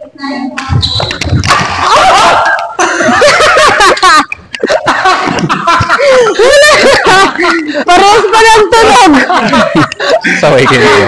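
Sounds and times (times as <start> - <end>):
people laughing: 1.2 - 11.0.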